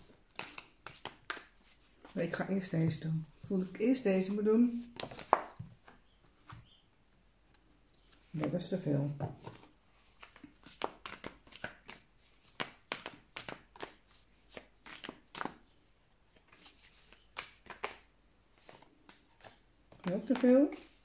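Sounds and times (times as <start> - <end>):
cards being shuffled: 0.0 - 2.2, 4.7 - 6.6, 9.2 - 15.6, 16.3 - 21.0.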